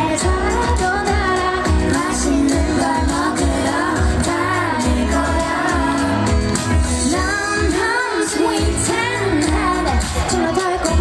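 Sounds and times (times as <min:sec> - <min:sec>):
amplified backing music with beat: 0:00.0 - 0:11.0
woman singing into microphone: 0:00.0 - 0:11.0.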